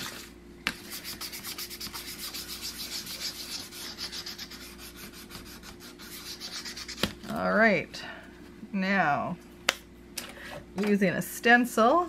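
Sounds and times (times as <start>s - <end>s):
sanding stick scraping paper: 0.8s - 7.0s.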